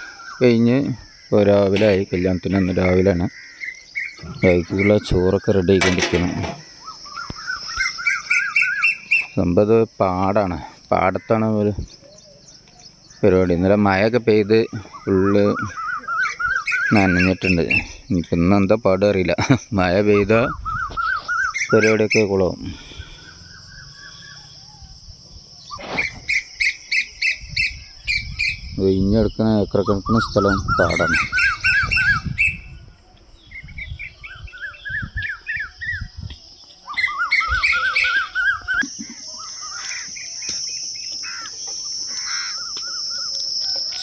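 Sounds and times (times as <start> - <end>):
bird calling in repeated notes: 0.0 - 9.6, 10.9 - 18.2, 20.0 - 25.0, 29.8 - 44.0
voices talking: 0.0 - 33.4, 34.1 - 44.0
crickets chirring: 0.0 - 44.0
bird calling sharply: 36.8 - 44.0.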